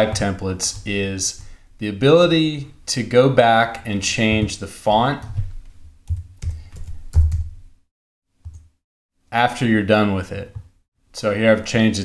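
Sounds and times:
keyboard typing: 5.2 - 7.6.

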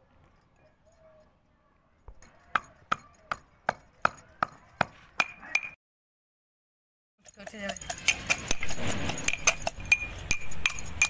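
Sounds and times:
stone pestle pounding in mortar: 2.1 - 5.7, 7.2 - 11.0.

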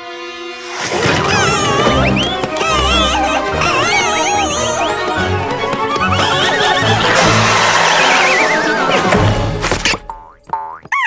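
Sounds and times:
cartoon music: 1.0 - 11.0.

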